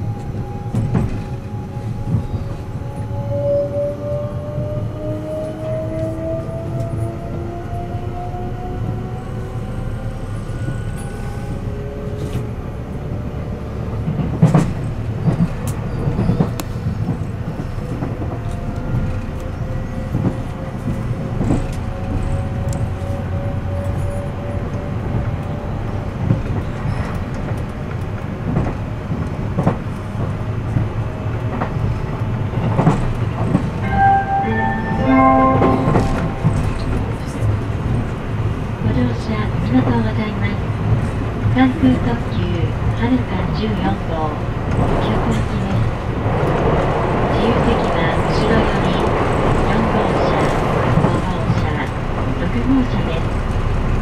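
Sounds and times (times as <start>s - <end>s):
train wheels rumbling on rail: 0.0s - 54.0s
short tones: 33.8s - 36.9s.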